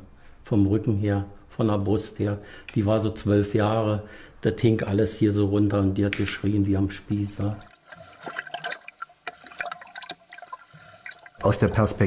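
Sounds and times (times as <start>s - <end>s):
water dripping: 6.0s - 11.5s
water trickling and splashing: 7.3s - 11.5s.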